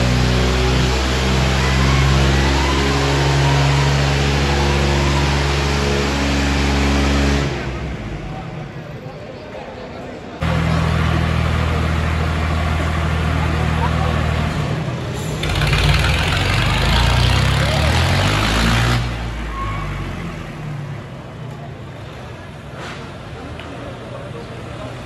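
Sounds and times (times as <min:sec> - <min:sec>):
tractor engines revving: 0:00.0 - 0:09.0, 0:10.4 - 0:25.0
crowd voices: 0:00.0 - 0:25.0.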